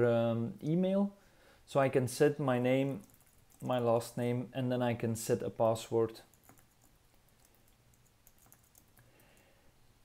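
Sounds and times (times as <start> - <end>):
keyboard typing: 2.9 - 3.8, 6.2 - 9.4.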